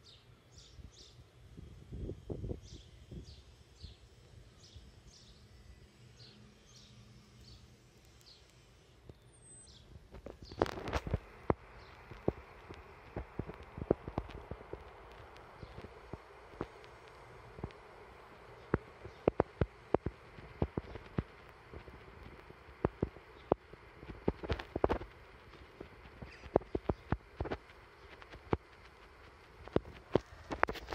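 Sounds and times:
faint background noise: 0.0s - 30.9s
sharp clicks and taps: 18.6s - 29.0s.

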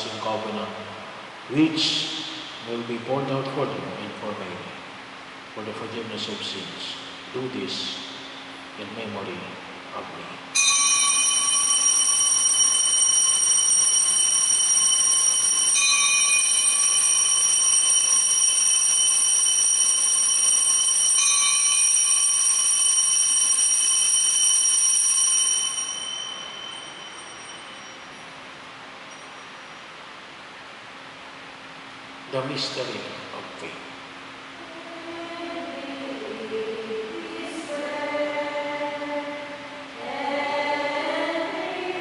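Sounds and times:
bell ringing high: 10.6s - 29.9s.

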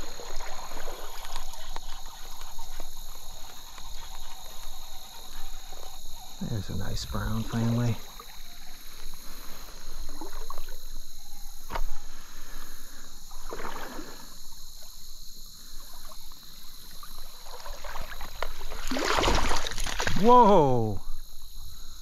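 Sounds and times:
water splashing: 0.0s - 5.8s, 13.3s - 14.9s, 15.8s - 20.8s.

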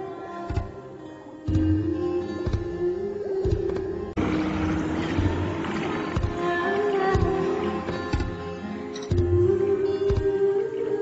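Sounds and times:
music with sustained tones: 0.0s - 11.0s.

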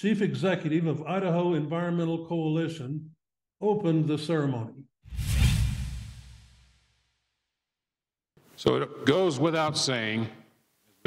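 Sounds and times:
deep rumble: 5.1s - 6.8s
whoosh sound effect: 5.1s - 7.0s.

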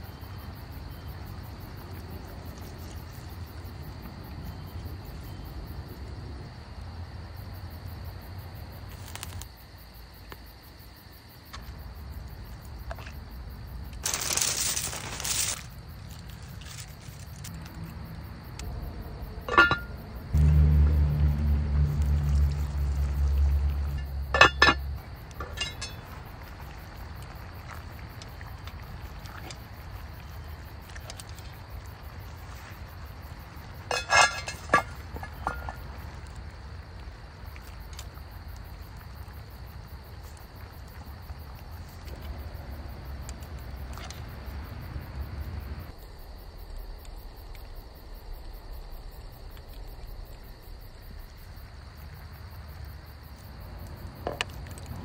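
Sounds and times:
crickets chirping: 0.0s - 55.0s
metal tongs clinking on pot: 19.5s - 19.9s, 24.0s - 24.8s, 25.4s - 26.0s, 33.9s - 35.7s.

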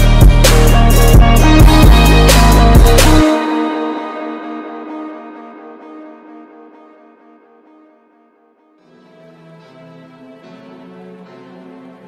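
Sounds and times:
guitar music: 0.0s - 10.7s.

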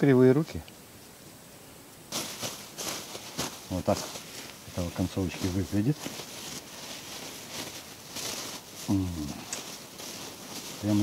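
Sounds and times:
plastic bag crinkling: 2.1s - 11.0s.

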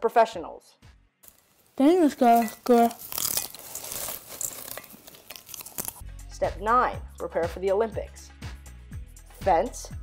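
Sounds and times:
hand rummaging in popcorn: 1.3s - 6.0s
person chewing popcorn: 1.3s - 6.0s.

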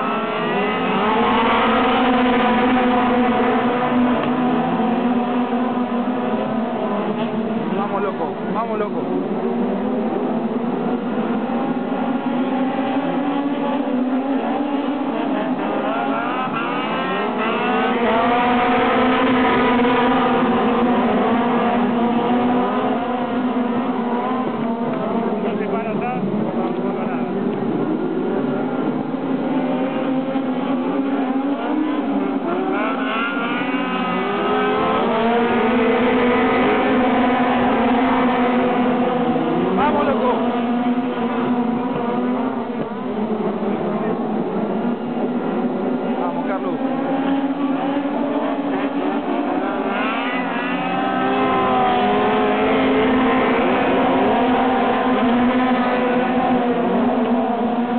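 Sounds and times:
race car engines revving: 0.0s - 57.9s.

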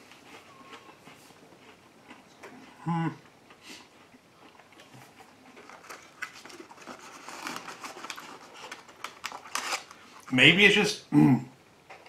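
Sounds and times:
paper carton crinkling and clicking: 5.6s - 10.0s.

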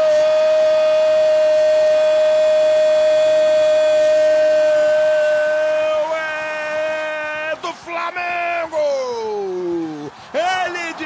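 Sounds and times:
commentator shouting goal cry: 5.0s - 11.0s.

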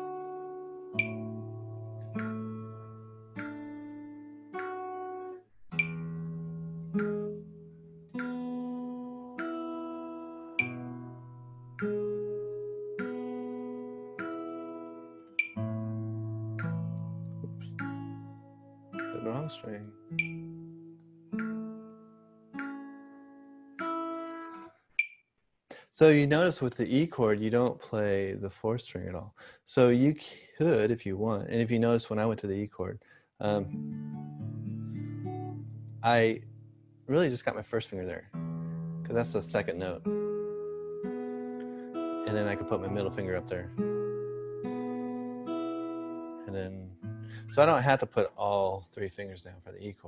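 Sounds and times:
fingerstyle acoustic guitar chords: 0.0s - 24.7s, 33.5s - 37.6s, 38.2s - 48.6s.

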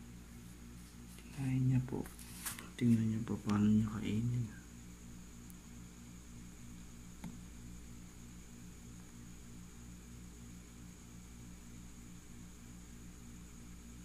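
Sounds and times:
faint electrical hum: 0.0s - 14.0s
low hiss: 0.0s - 14.0s.

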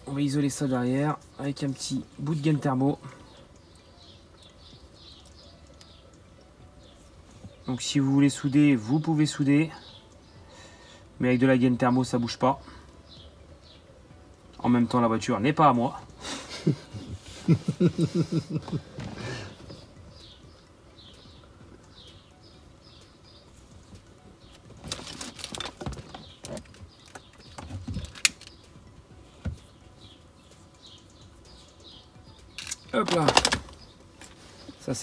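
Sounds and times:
man laughing: 16.2s - 19.5s
wire plugs clicking and rustling: 23.9s - 28.8s, 32.4s - 34.4s.

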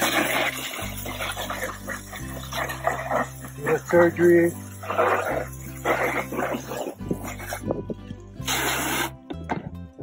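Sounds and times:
garden hose spraying water: 0.0s - 9.3s
background music: 0.0s - 10.0s.

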